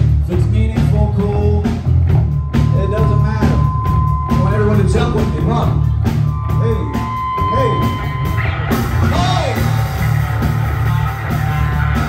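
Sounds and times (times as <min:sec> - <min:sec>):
drum kit: 0:00.0 - 0:12.0
electric bass: 0:00.0 - 0:12.0
electric guitar: 0:02.1 - 0:12.0.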